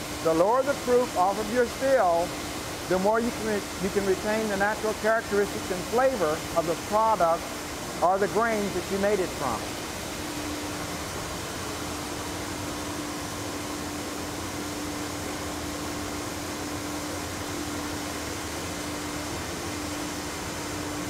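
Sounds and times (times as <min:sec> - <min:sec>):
machinery hum and hiss: 0:00.0 - 0:21.0.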